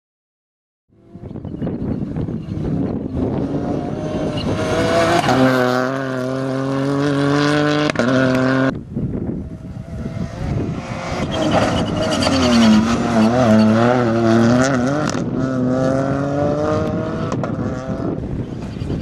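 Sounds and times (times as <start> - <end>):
rally car engine at high revs: 1.0 - 8.8, 9.4 - 18.8.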